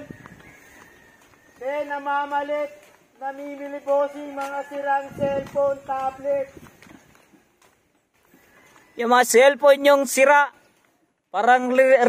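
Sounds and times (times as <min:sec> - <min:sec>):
footsteps on concrete: 0:00.0 - 0:09.0, 0:10.4 - 0:11.4.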